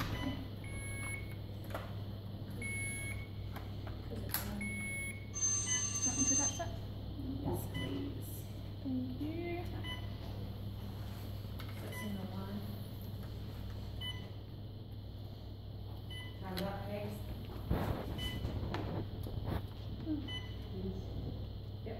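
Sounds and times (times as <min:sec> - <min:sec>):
medical equipment beeping: 0:00.0 - 0:01.5, 0:02.5 - 0:03.6, 0:04.3 - 0:06.8, 0:07.6 - 0:08.2, 0:09.6 - 0:10.4, 0:11.8 - 0:12.4, 0:14.0 - 0:14.5, 0:16.0 - 0:17.2, 0:17.9 - 0:18.8, 0:20.1 - 0:20.9.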